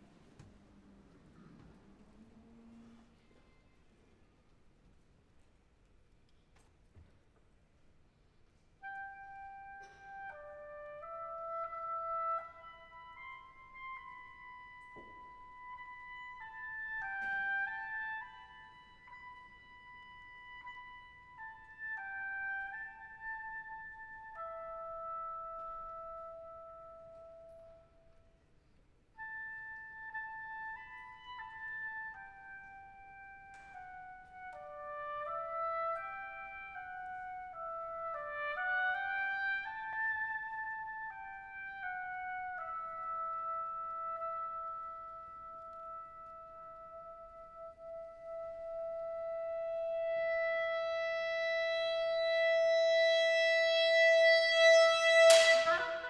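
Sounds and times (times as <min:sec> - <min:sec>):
solo clarinet melody: 0:08.8 - 0:56.0.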